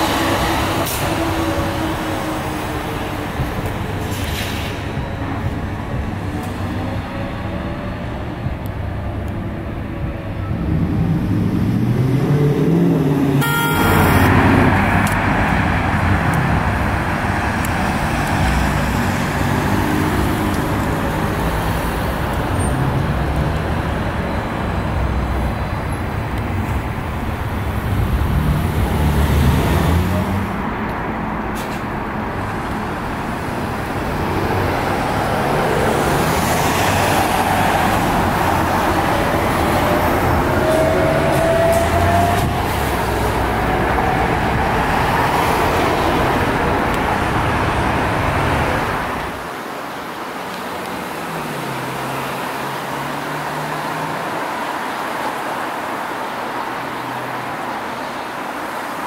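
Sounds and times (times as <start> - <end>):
road traffic noise: 0.0 - 59.0
trolleybus passing close by: 0.0 - 59.0.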